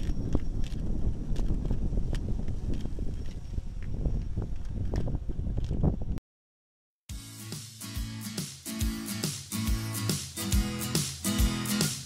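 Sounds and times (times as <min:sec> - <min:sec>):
wind buffeting microphone: 0:00.0 - 0:06.2.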